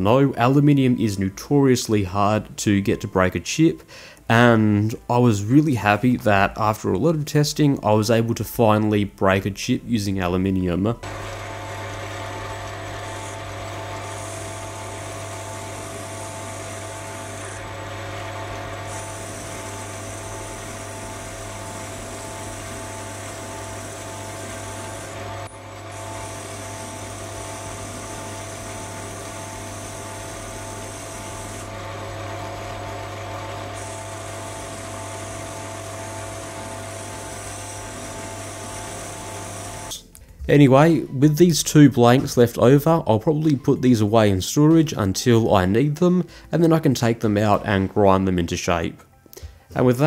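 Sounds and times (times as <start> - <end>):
lathe motor hum and whine: 11.0 - 40.0.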